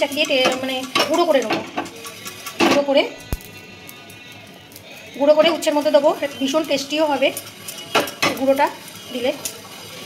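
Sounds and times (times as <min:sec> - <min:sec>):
woman talking: 0:00.0 - 0:01.7, 0:02.6 - 0:03.2, 0:05.2 - 0:07.4, 0:08.2 - 0:09.5
steel utensils clattering: 0:00.0 - 0:03.1, 0:05.1 - 0:10.0.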